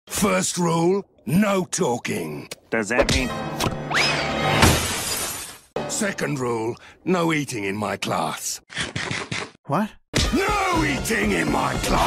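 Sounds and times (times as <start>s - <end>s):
music: 3.0s - 4.5s, 5.8s - 6.6s, 10.2s - 12.0s.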